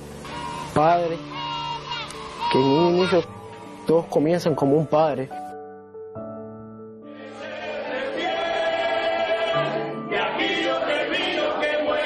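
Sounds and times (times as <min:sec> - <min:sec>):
group of voices singing: 0:07.1 - 0:12.0.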